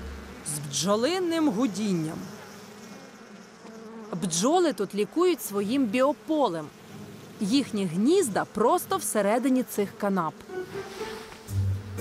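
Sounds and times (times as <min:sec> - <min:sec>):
honeybees humming: 0:00.0 - 0:12.0.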